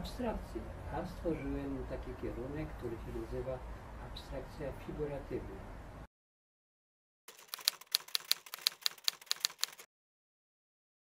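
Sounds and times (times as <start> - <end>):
typewriter key clicks: 7.3 - 9.9.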